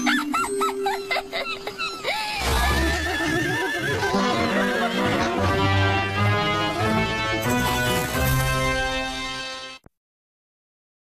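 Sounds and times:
squeaky cartoon sounds: 0.0s - 5.5s.

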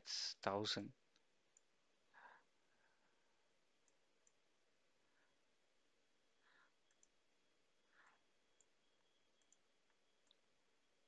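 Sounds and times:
tiny clicks: 6.8s - 7.2s, 9.4s - 10.5s.

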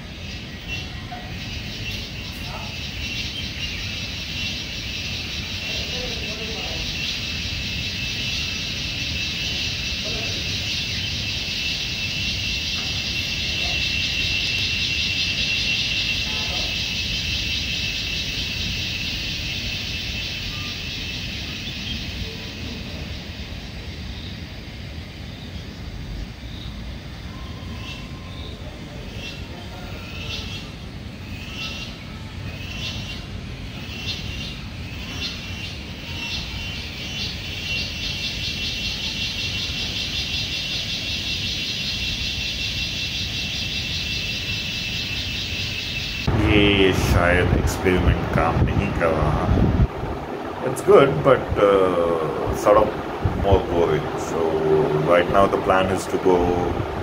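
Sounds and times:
pulsing insect chorus: 0.0s - 57.0s
low background rumble: 46.2s - 57.0s.

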